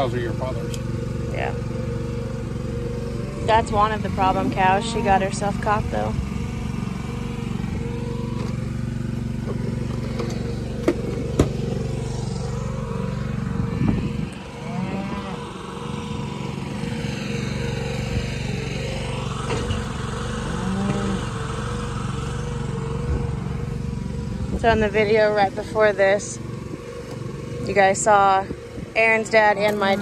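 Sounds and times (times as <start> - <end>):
engine idling: 0.0 - 30.0.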